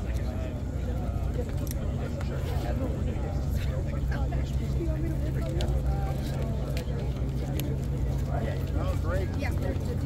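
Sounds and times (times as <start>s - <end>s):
indistinct conversation: 0.0s - 10.0s.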